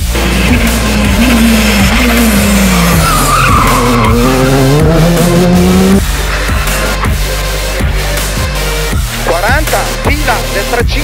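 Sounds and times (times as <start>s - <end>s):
rally car engine revving: 0.0s - 7.6s
backing music: 0.0s - 11.0s
tyre squeal: 1.2s - 5.1s.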